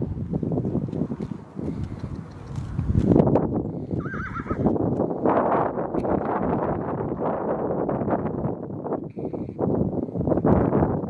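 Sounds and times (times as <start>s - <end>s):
donkey braying: 4.0s - 4.7s.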